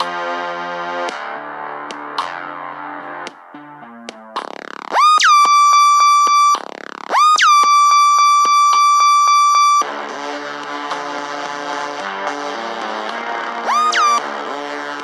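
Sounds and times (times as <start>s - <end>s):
layered keyboard chords: 0.0s - 9.8s, 10.8s - 15.0s
synthesizer tone swooping up: 4.9s - 9.8s, 13.6s - 14.2s.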